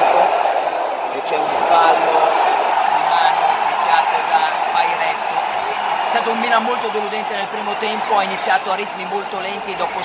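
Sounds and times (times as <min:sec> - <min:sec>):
stadium crowd roar: 0:00.0 - 0:10.0
man talking: 0:01.1 - 0:05.4, 0:06.0 - 0:10.0.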